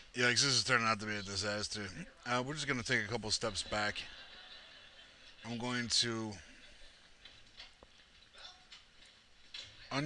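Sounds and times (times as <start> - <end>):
man speaking: 0.0 - 4.1, 5.4 - 6.5.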